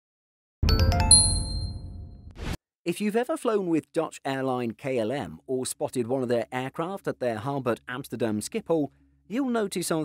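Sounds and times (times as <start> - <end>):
quick chime notes: 0.6 - 2.1
bright ringing ding: 0.7 - 2.1.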